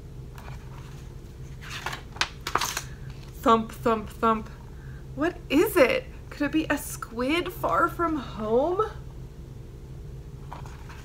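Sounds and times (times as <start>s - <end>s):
paper page turning: 0.3s - 3.4s, 10.5s - 11.0s.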